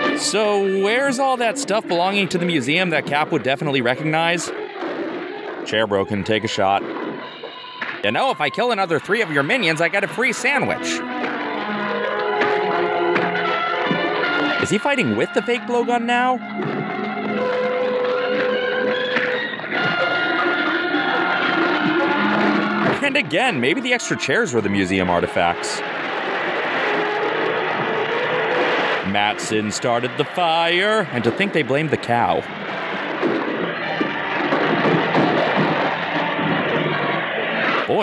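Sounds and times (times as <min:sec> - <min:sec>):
dramatic film music: 0:06.7 - 0:37.0.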